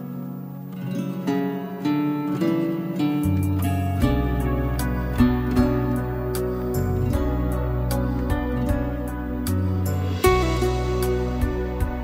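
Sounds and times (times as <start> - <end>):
plucked guitar melody: 0.0 - 12.0
low bass note: 4.0 - 12.0.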